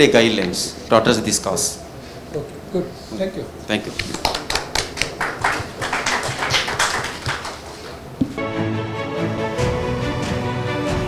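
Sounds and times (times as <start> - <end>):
audience clapping: 3.9 - 8.0.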